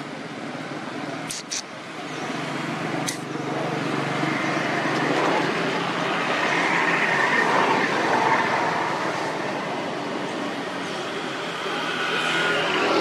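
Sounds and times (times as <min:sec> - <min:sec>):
passing vehicle: 0:00.9 - 0:13.0.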